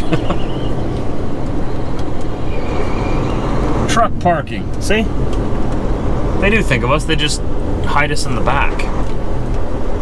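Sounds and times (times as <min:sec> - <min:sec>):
road noise: 0:00.0 - 0:10.0
truck diesel engine running: 0:00.0 - 0:10.0.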